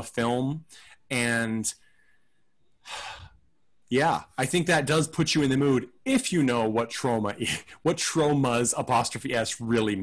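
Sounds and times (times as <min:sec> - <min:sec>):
sigh-like breath: 0:02.8 - 0:03.4.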